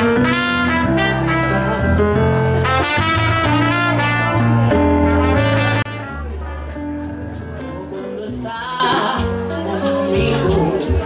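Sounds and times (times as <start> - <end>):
trumpet solo: 0.0 - 6.6
low bass notes: 0.0 - 11.0.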